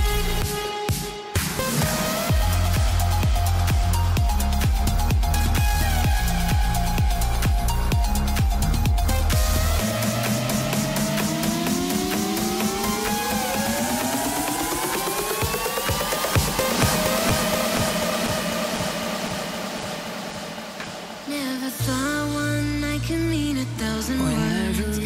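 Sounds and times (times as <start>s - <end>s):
dance track with heavy bass: 0.0s - 25.0s
repeated drum hits: 15.3s - 21.3s.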